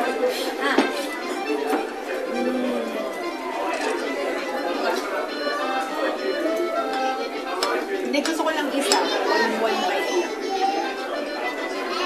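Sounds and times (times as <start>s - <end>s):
background music: 0.0s - 12.0s
restaurant chatter: 0.0s - 12.0s.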